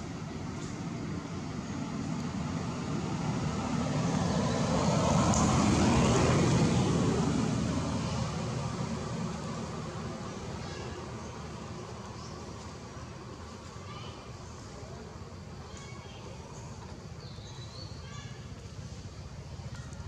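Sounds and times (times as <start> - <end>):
vehicle passing by: 0.0 - 13.6.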